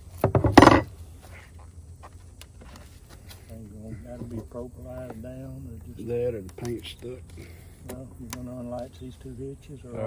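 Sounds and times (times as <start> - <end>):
wooden knocks and clatter: 0.2 - 0.9.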